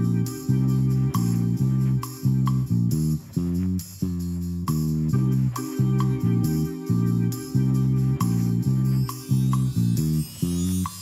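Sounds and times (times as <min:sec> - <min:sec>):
low stepping bass line: 0:00.0 - 0:11.0.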